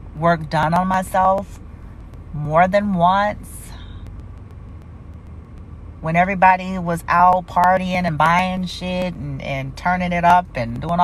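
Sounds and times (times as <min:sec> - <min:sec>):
low background hum and rumble: 0:00.0 - 0:11.0
faint ticks: 0:03.7 - 0:05.7.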